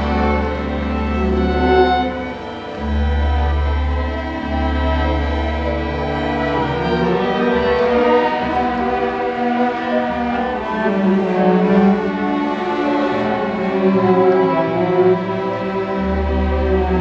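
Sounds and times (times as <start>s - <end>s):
string orchestra holding notes: 0.0s - 17.0s.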